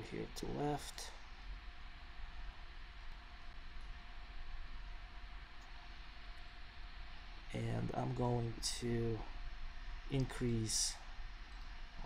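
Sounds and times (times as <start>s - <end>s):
faint low hum: 0.0s - 12.0s
steady background hiss: 0.0s - 12.0s.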